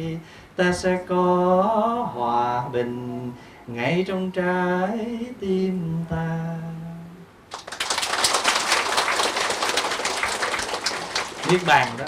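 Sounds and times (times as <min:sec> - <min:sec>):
crowd clapping: 0:07.5 - 0:12.0.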